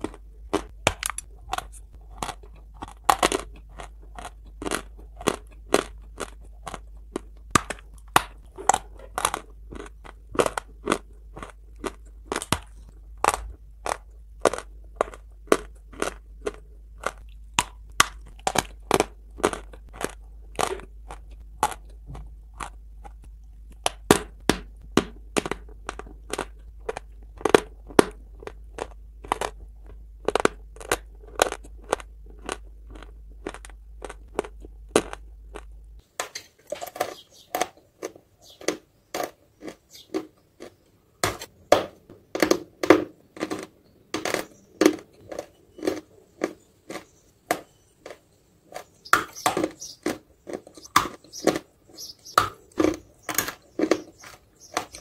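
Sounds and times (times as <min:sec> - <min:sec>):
crunchy chewing of dry clay: 0:00.0 - 0:55.0.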